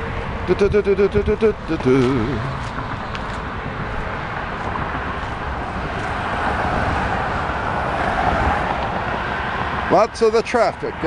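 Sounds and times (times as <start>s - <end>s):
highway traffic noise: 0.0s - 11.0s.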